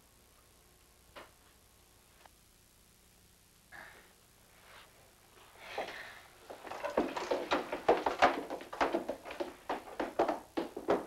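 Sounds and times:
footsteps climbing stairs: 5.8 - 11.0.

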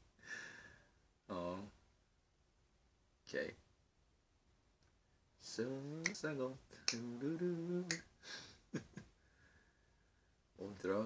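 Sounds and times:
voice over video call: 1.3 - 1.8, 3.2 - 3.7, 10.6 - 11.0.

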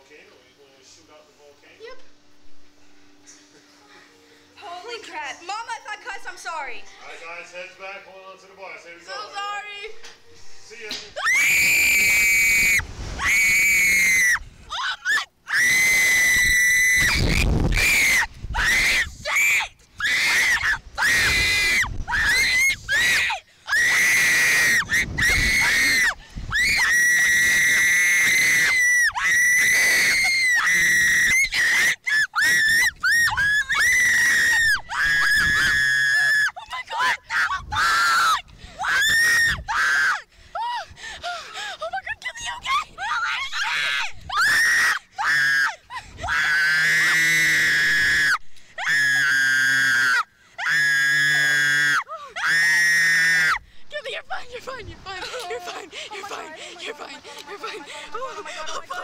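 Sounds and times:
girls screaming: 11.2 - 40.9, 42.1 - 53.6.

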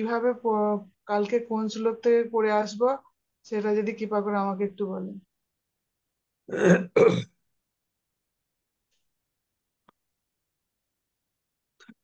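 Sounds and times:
person clearing throat: 6.5 - 7.4.

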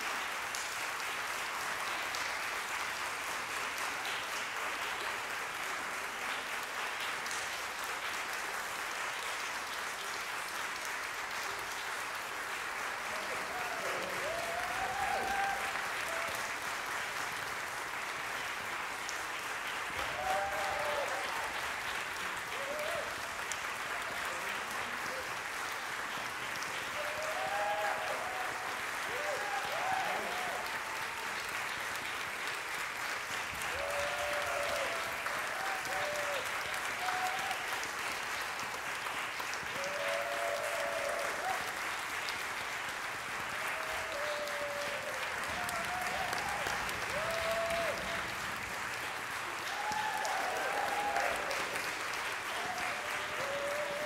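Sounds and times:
audience applauding: 0.0 - 54.0.

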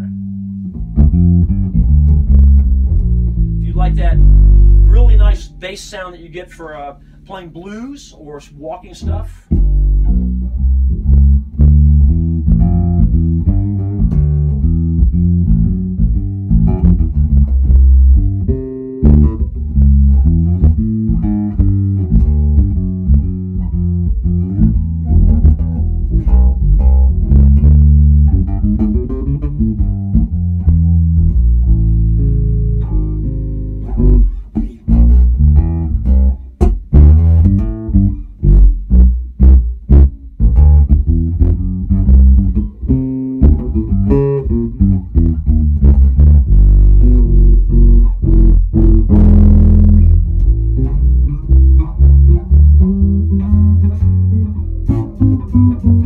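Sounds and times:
electric bass line: 0.0 - 56.0.

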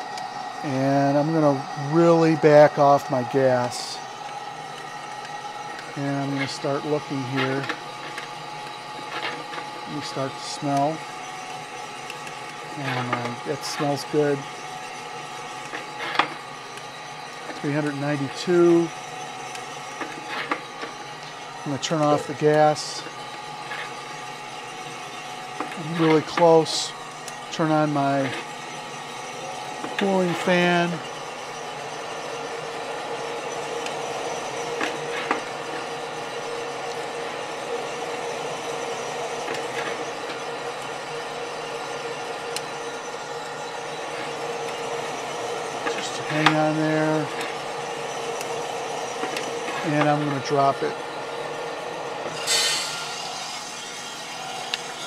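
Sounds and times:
coffee roaster hissing: 0.0 - 55.0
motor and fan hum: 0.0 - 55.0.

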